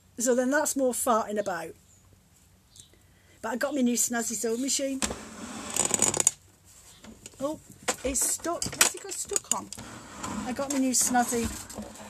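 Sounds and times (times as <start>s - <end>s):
rustling and scraping: 4.4s - 12.0s.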